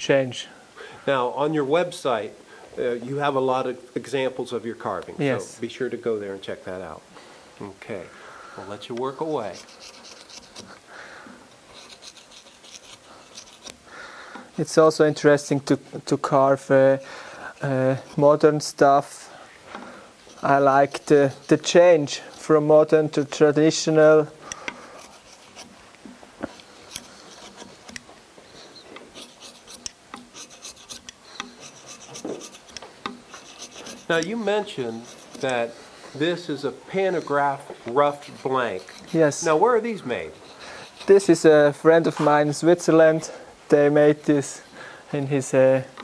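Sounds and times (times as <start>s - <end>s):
carving tool scratching wood: 9.2s - 15.5s, 17.5s - 19.1s, 20.1s - 41.7s.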